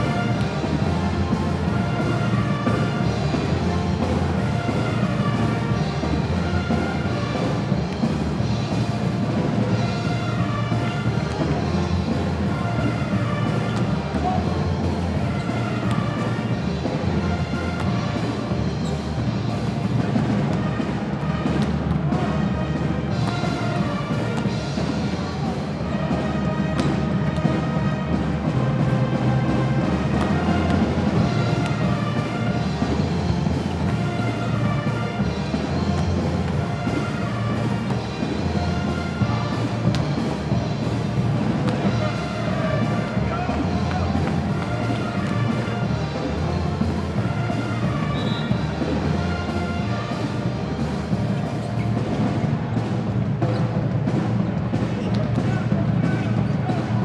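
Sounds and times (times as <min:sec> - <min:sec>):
music over loudspeakers: 0:00.0 - 0:57.0.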